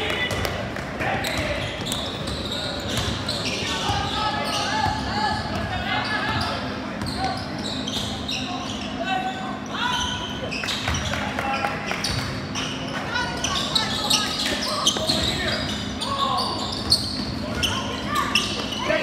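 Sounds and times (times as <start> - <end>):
sneakers squeaking: 0.0 - 19.0
voices talking and calling out: 0.0 - 19.0
basketball bouncing on court: 1.2 - 4.1.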